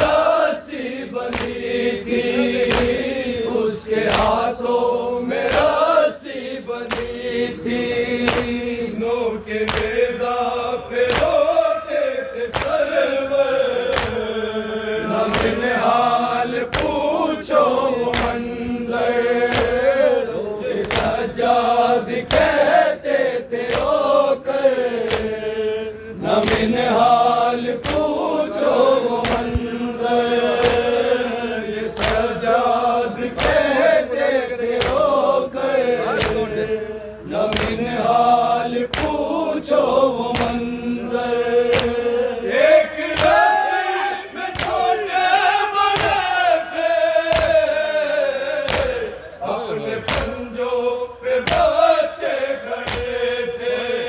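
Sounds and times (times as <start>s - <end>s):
men chanting in unison: 0.0s - 54.0s
hands slapping chests: 1.2s - 3.2s, 4.0s - 4.5s, 5.4s - 5.8s, 6.8s - 7.4s, 8.2s - 8.7s, 9.6s - 10.2s, 11.0s - 11.6s, 12.4s - 13.0s, 13.8s - 14.4s, 15.2s - 16.0s, 16.6s - 17.2s, 18.0s - 18.7s, 19.4s - 20.0s, 20.8s - 21.4s, 22.1s - 22.8s, 23.6s - 24.1s, 24.9s - 25.4s, 26.4s - 29.7s, 30.5s - 31.1s, 31.9s - 32.4s, 33.2s - 33.8s, 34.6s - 35.2s, 36.0s - 36.7s, 37.5s - 38.0s, 38.7s - 39.3s, 40.2s - 40.7s, 41.7s - 42.0s, 43.0s - 43.6s, 44.4s - 44.9s, 45.9s - 46.3s, 47.3s - 47.7s, 48.6s - 49.1s, 50.0s - 50.5s, 51.4s - 51.8s, 52.8s - 53.2s.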